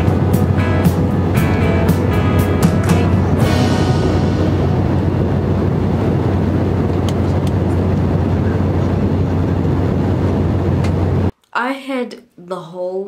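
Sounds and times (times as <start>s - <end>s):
airliner cabin engine drone: 0.0s - 11.3s
low hum: 0.0s - 11.3s.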